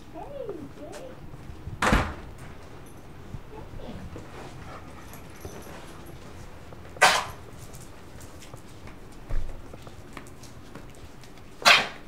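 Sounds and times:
dog barking: 7.0 - 7.4.

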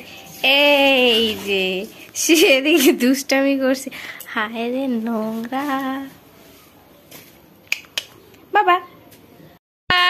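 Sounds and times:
woman's voice: 0.0 - 6.2, 8.5 - 9.0.

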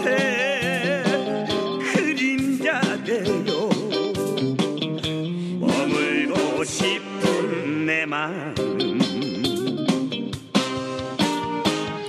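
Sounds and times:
guitar lead bending notes: 0.0 - 5.4, 8.6 - 12.0
steady drum beat: 0.0 - 7.5.

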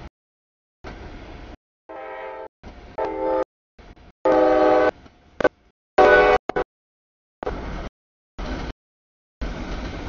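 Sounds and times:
locomotive air horn blasts: 1.9 - 3.5, 4.2 - 5.0, 6.0 - 6.6.

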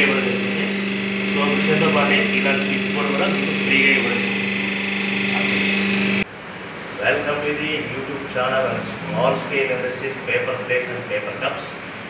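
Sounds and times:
electric motor humming: 0.0 - 6.2.

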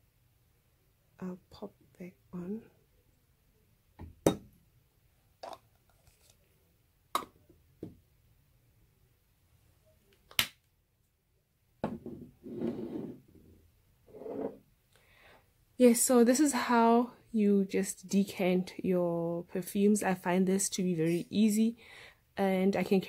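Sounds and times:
soft handling noise: 5.4 - 6.6.

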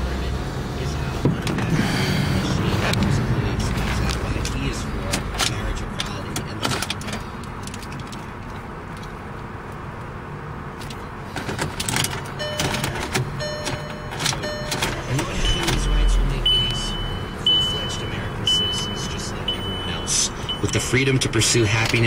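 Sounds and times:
car engine cranking and starting: 0.0 - 10.1, 10.7 - 22.0
high warning chime beeping: 12.1 - 21.3
short electronic chimes: 12.4 - 20.6.

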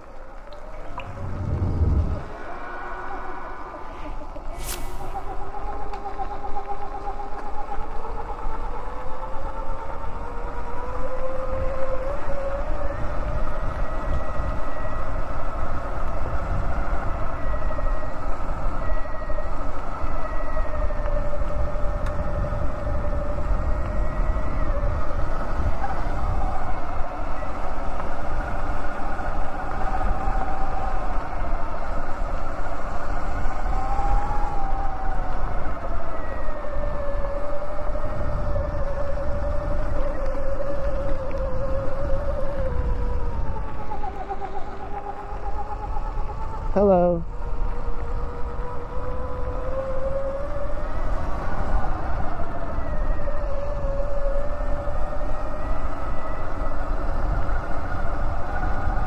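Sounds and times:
electric bike motor whine: 0.0 - 59.0
wind rumble on microphone: 0.0 - 59.0.

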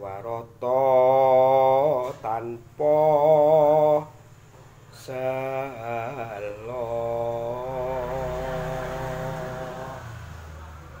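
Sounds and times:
man singing long wavering note: 5.0 - 10.2.

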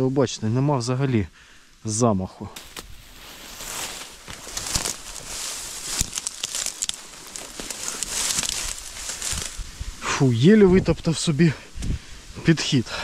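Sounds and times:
stems snapping: 2.6 - 9.7
dry reeds rustling and crackling: 2.6 - 11.2.

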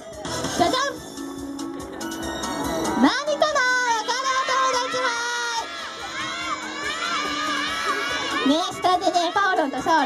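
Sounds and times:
children calling out and cheering: 2.4 - 10.0.

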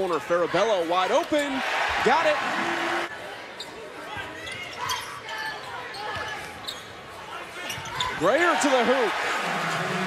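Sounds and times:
arena crowd noise: 0.0 - 10.0
sneaker squeaks: 3.6 - 8.2.

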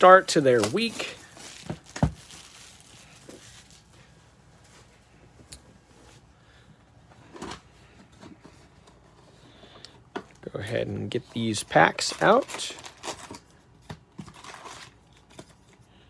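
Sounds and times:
trading cards rustling: 0.0 - 4.1, 11.0 - 15.8.

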